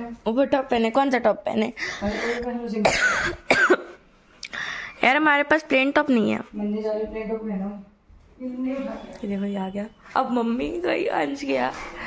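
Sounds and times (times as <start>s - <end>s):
woman coughing: 2.8s - 4.0s.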